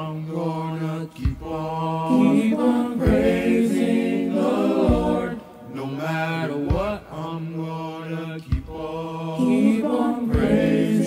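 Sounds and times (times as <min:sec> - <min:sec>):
choir singing in harmony: 0:00.0 - 0:11.0
low thump: 0:04.9 - 0:05.3.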